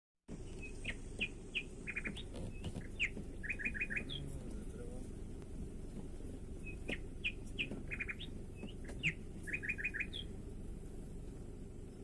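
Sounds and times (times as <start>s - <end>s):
birds chirping: 0.3s - 12.0s
steady low rumble: 0.3s - 12.0s.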